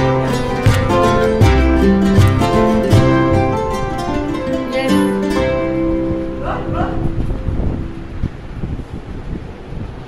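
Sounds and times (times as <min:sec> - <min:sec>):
guitar music: 0:00.0 - 0:08.8
microphone handling rumble: 0:05.3 - 0:10.0.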